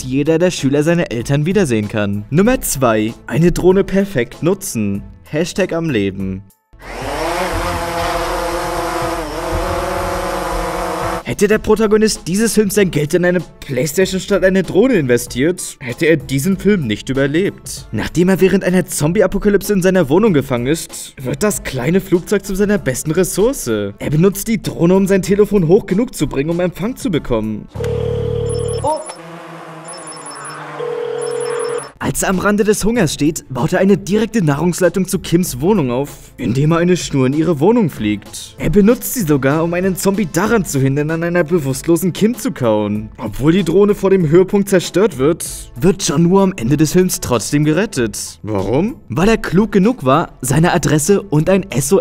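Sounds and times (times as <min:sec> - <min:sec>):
drone propellers buzzing: 0:06.8 - 0:11.2, 0:29.0 - 0:31.9
sustained warning tone: 0:27.8 - 0:32.0
high electronic beeps: 0:28.5 - 0:29.2, 0:29.8 - 0:32.0.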